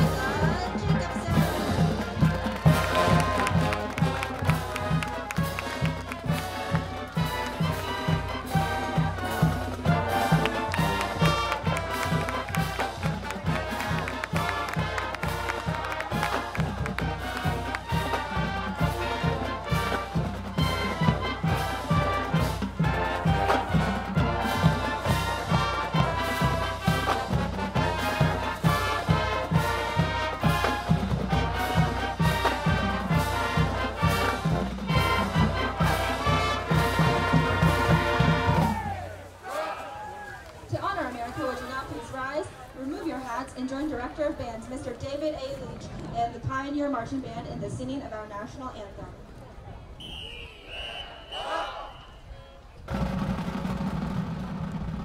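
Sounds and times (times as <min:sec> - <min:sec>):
steady drum beat: 0:00.0 - 0:39.3, 0:52.9 - 0:55.0
marching band brass tune: 0:00.0 - 0:49.3, 0:49.9 - 0:55.0.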